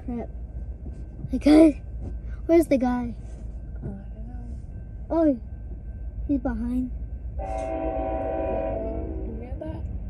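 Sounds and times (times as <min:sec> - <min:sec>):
locomotive air horn chord: 0:07.4 - 0:09.5.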